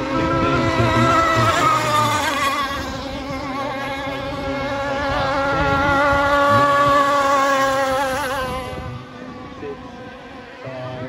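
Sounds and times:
distant boat engines buzzing: 0.0s - 11.0s
model boat engine buzzing: 0.0s - 11.0s.

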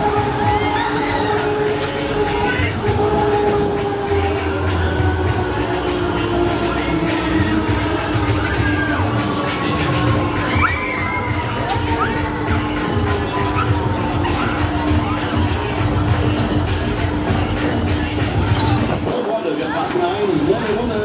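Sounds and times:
riders shouting and cheering: 0.0s - 16.5s
loud music with thudding beat: 0.0s - 19.1s.

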